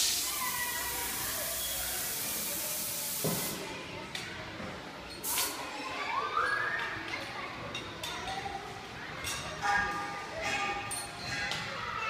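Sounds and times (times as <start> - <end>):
steady hiss of escaping air: 0.0 - 3.7
thump: 3.2 - 3.5.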